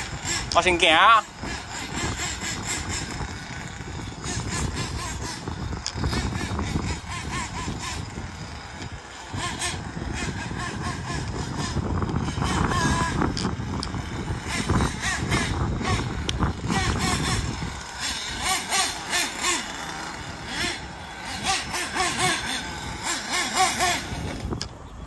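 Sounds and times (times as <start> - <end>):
rc truck engine revving: 0.0 - 25.0.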